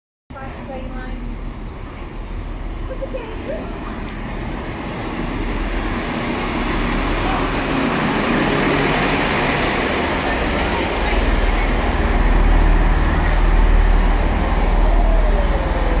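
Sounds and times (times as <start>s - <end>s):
diesel train engine: 0.3s - 16.0s
train wheels on rails: 0.5s - 16.0s.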